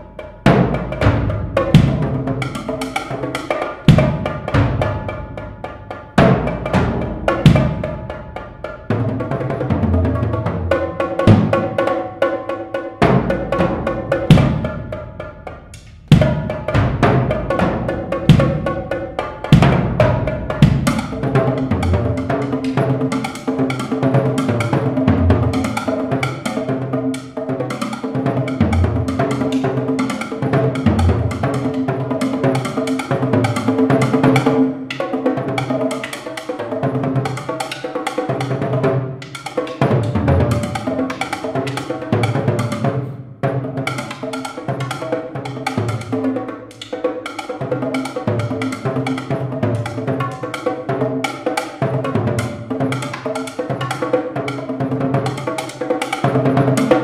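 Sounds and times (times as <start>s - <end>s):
drums played with mallets: 0.0s - 57.0s
deep bass drum hits: 1.0s - 2.2s, 6.8s - 8.0s.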